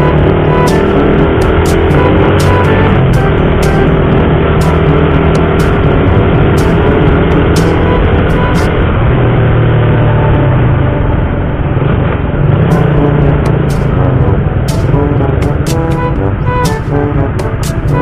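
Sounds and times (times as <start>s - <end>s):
background music: 0.0s - 9.1s, 12.4s - 18.0s
motorcycle engine running: 0.0s - 10.9s, 12.4s - 18.0s.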